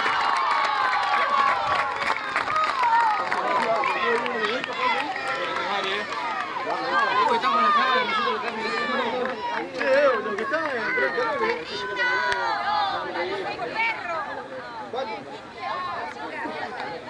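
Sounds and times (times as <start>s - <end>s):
women and girls shouting: 10.2s - 14.3s.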